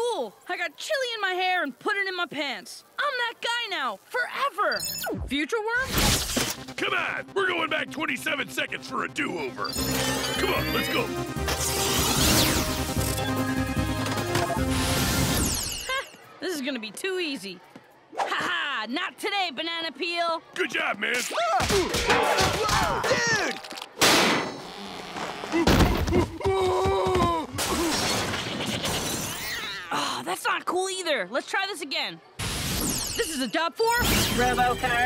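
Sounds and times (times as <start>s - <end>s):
cartoon crash: 5.8s - 6.8s, 24.0s - 24.6s, 27.6s - 29.8s
busy music: 6.5s - 15.1s.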